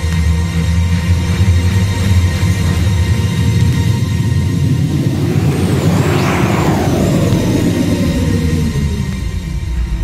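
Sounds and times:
whooshing noise sweep: 2.4s - 9.7s.

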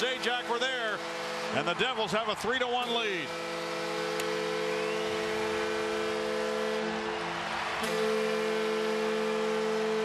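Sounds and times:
arena goal horn: 0.0s - 10.0s
crowd noise: 0.0s - 10.0s.

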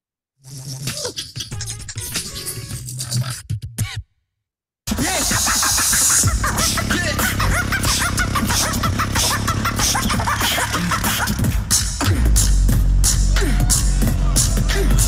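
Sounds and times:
bass: 0.4s - 4.1s, 4.9s - 15.0s
beatboxing: 0.4s - 4.1s, 4.9s - 15.0s.

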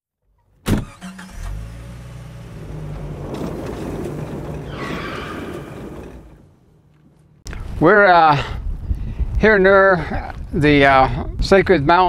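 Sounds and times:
car engine running: 0.8s - 7.4s.

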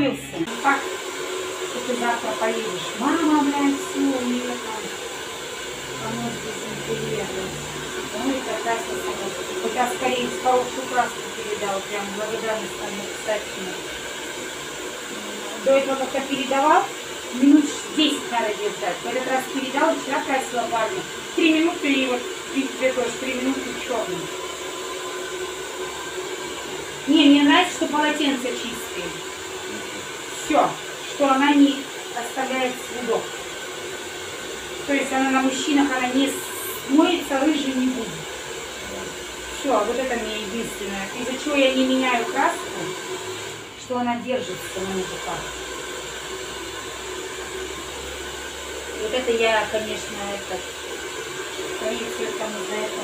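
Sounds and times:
hair dryer blowing: 0.0s - 53.0s.

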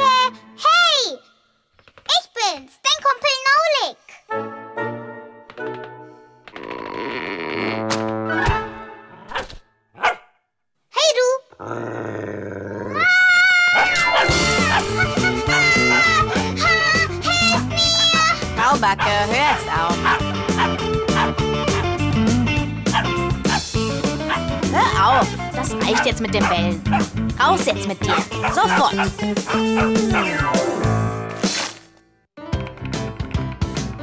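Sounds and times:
cartoon dog vocal sounds: 11.5s - 18.4s, 28.0s - 30.7s
loud background music: 14.1s - 31.2s.

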